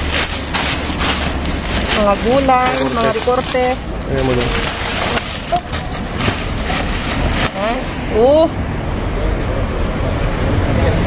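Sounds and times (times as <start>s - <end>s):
rustling: 0.0s - 8.2s
steady background rumble: 0.0s - 11.0s.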